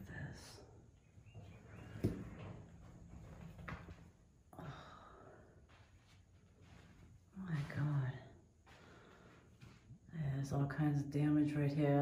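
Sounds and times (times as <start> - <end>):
footsteps on debris-strewn floor: 5.6 - 10.1.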